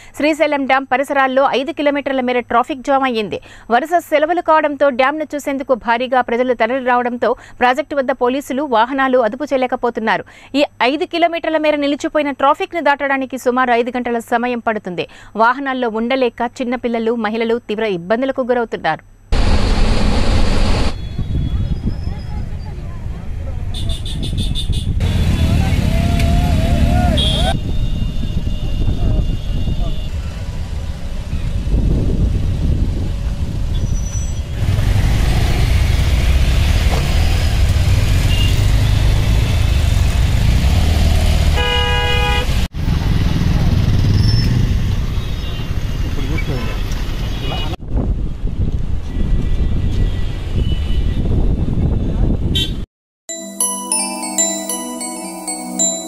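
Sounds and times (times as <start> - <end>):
low traffic rumble: 19.3 - 47.8
car horns honking: 23.8 - 30.2, 41.6 - 42.6
car and motorbike engines: 25.0 - 27.6, 30.0 - 47.8.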